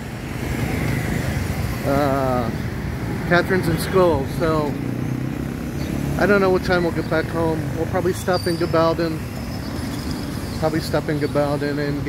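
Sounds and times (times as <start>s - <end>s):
vehicle engine rumbling: 0.0s - 12.0s
man saying uh: 1.8s - 2.6s.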